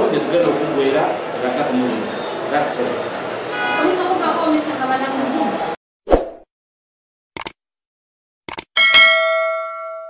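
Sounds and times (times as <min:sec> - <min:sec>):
bright bell ding: 0:08.8 - 0:10.0.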